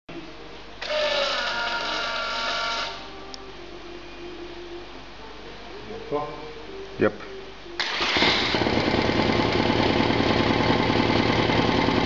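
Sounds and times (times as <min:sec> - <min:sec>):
faint steady hum: 0:00.1 - 0:07.8
electric fuel pump whining: 0:00.8 - 0:03.0, 0:07.8 - 0:12.0.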